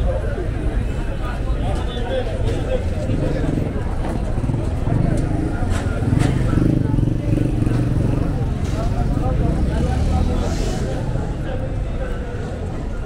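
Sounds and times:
motorcycles: 0.0s - 13.0s
road traffic: 0.0s - 13.0s
voices of passers-by talking: 0.0s - 13.0s.

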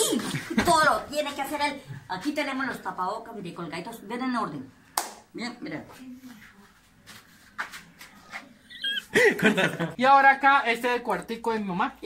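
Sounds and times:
high-pitched squeaky chirp: 8.7s - 9.1s.

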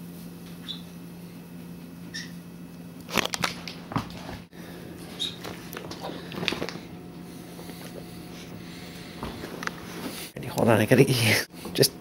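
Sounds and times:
dog crunching a cracker: 3.1s - 3.8s.

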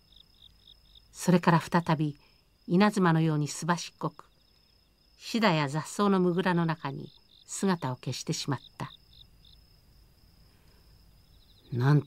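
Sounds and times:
insect trilling: 0.0s - 12.0s
short insect chirps: 0.0s - 12.0s.

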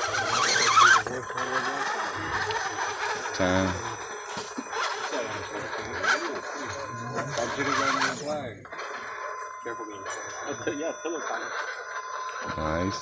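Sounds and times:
people talking and laughing: 0.0s - 11.6s
thin steady high tone: 0.0s - 13.0s.

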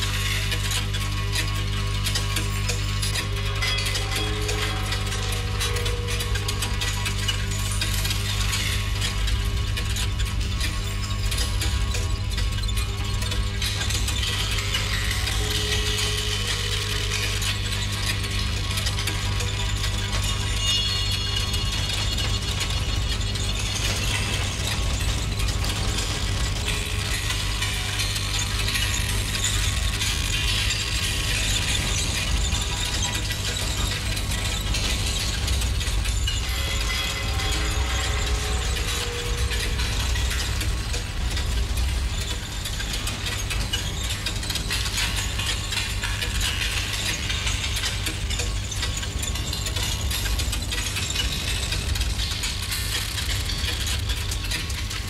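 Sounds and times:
mechanical clattering and ratcheting: 0.0s - 55.0s
steady low hum: 4.6s - 55.0s.

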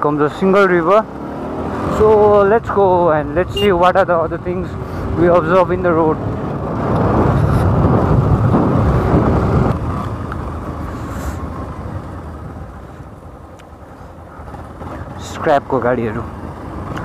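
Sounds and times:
motorcycle engine: 0.0s - 17.0s
road noise: 0.0s - 17.0s
wind on microphone: 6.3s - 10.1s.

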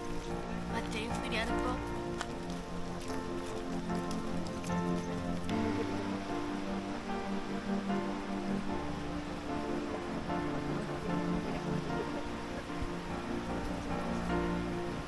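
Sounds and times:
background music with sustained notes: 0.0s - 15.0s
rain patter: 0.0s - 15.0s.

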